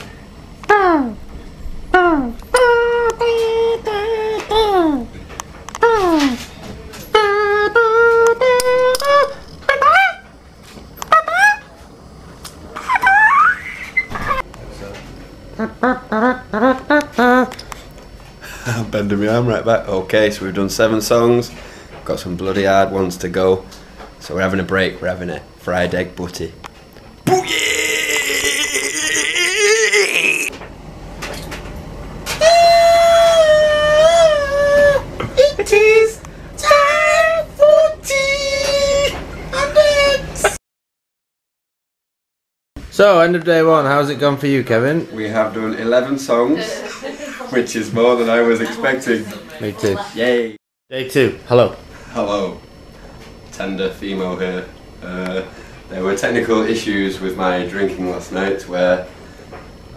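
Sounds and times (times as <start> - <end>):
person singing high notes: 2.0 - 5.0, 7.1 - 10.3
swooping vocal whoops: 12.8 - 14.0, 27.3 - 30.5, 32.4 - 35.1.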